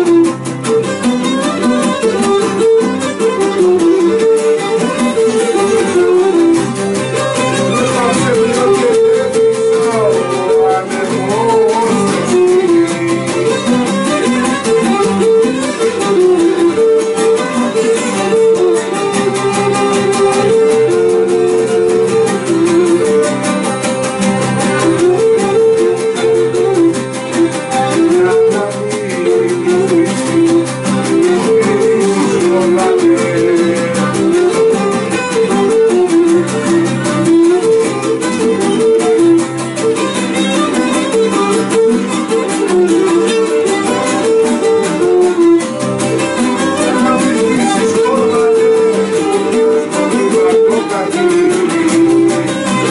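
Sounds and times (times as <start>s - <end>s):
bowed fiddle melody: 0.0s - 52.9s
strummed lutes: 0.0s - 52.9s
man singing: 7.5s - 15.1s, 27.4s - 35.3s, 41.0s - 45.4s, 46.5s - 52.9s.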